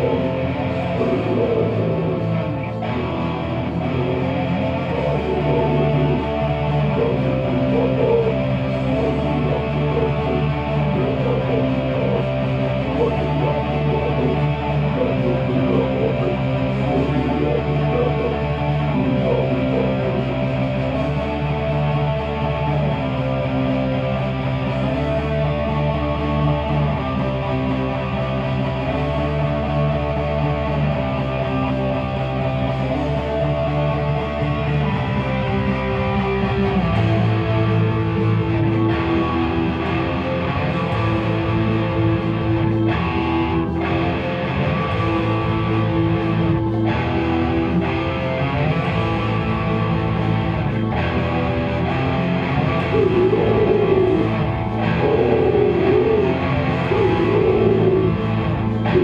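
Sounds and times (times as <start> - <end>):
heavy metal electric guitar: 0.0 - 59.0.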